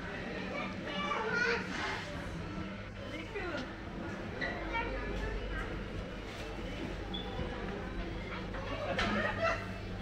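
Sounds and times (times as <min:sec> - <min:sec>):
people chattering indoors: 0:00.0 - 0:10.0
child's high voice: 0:00.9 - 0:01.8.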